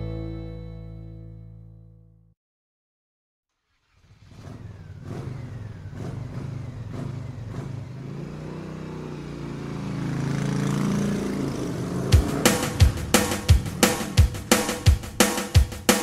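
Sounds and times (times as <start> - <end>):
vehicle engine revving: 3.7 - 16.0.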